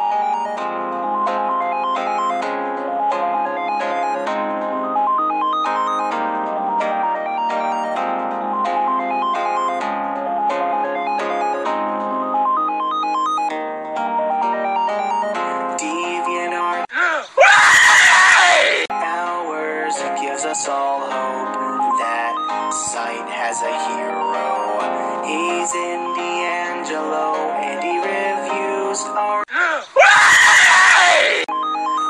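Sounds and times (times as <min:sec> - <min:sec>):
music with steady notes: 0:00.0 - 0:16.9, 0:18.9 - 0:29.5
man screaming in agony: 0:16.9 - 0:18.9, 0:29.5 - 0:31.5.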